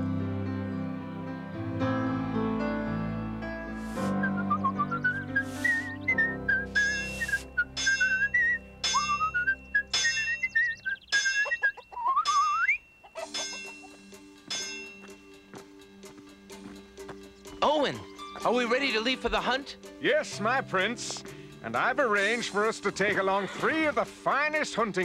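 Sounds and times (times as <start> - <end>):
light music: 0.0 - 25.0
whistle-like melody: 3.9 - 14.0
hammer clanging on anvil: 7.8 - 10.4, 13.2 - 15.2.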